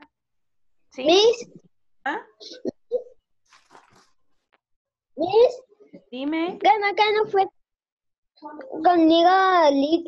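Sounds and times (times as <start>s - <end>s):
faint rustling: 3.5s - 4.6s.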